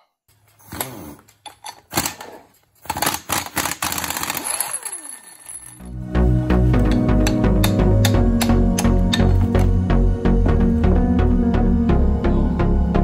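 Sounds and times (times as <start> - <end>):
impact wrench rattling: 0.4 - 5.9
background music with steady beat: 5.9 - 13.0.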